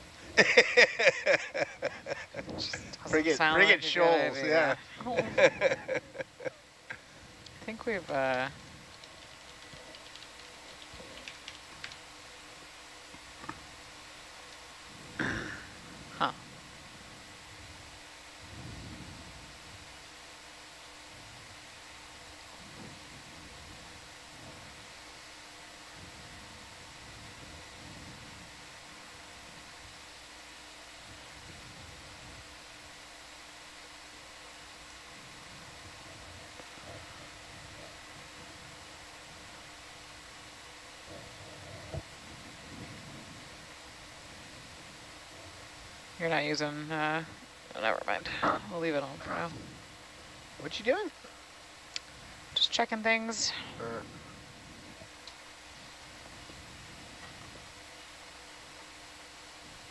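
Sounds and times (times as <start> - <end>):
faint low murmurs: 0.0 - 8.9
steady hiss and electronic hum: 0.0 - 59.9.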